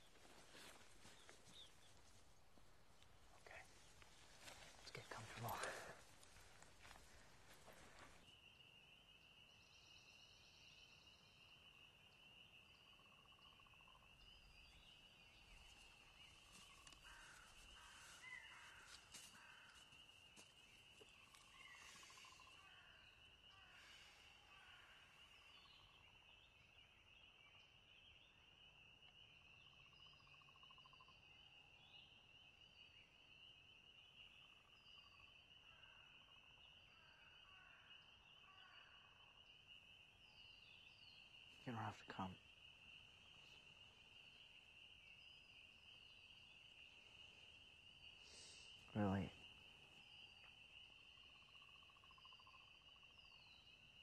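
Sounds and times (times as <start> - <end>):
rustling of brush: 0.0 - 8.3, 15.4 - 22.4
bird chirps: 0.0 - 54.0.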